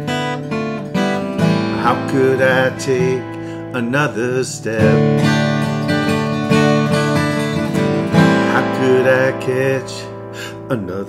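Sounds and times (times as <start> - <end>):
acoustic guitar chords: 0.0 - 11.0
man singing: 1.3 - 5.9, 7.7 - 11.0.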